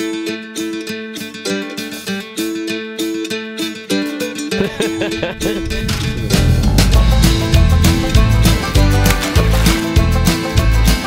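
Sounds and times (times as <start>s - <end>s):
upbeat guitar music: 0.0s - 11.0s.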